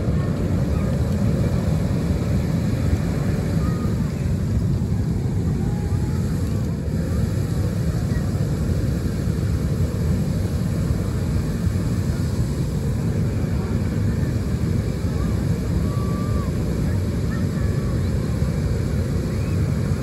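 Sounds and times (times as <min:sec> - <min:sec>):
inflator fan engine drone: 0:00.0 - 0:20.0.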